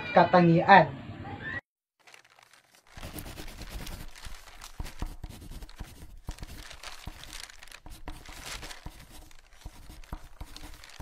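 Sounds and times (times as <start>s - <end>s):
paper rustling and crinkling: 2.0s - 11.0s.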